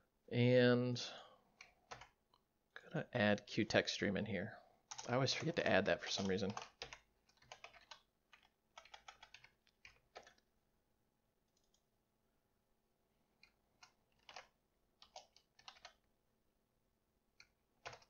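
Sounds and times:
computer keyboard typing: 0:01.6 - 0:02.2, 0:04.9 - 0:10.5, 0:11.5 - 0:11.8, 0:13.4 - 0:16.1, 0:17.4 - 0:18.0.

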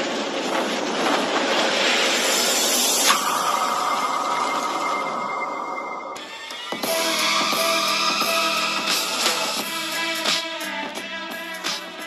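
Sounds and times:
dense rushing noise: 0:00.0 - 0:10.8
sudden hit: 0:03.0 - 0:09.4
high ringing tone: 0:03.1 - 0:09.3.

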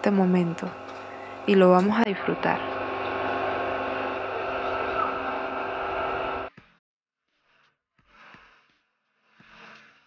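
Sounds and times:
motor humming: 0:00.0 - 0:06.5.

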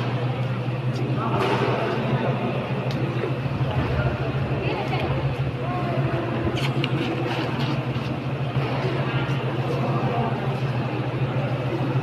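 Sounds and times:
faint voices: 0:00.0 - 0:12.0
steady low hum: 0:00.0 - 0:12.0.

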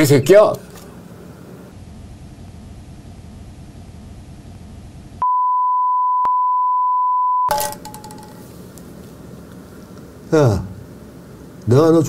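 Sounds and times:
high-pitched censor bleep: 0:05.2 - 0:08.4.

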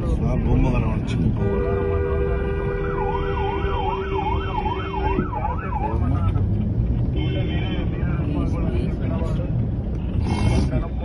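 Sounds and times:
city traffic noise: 0:00.0 - 0:11.0
car horn: 0:01.4 - 0:05.3, 0:07.1 - 0:08.0
police siren warbling: 0:03.0 - 0:06.3.

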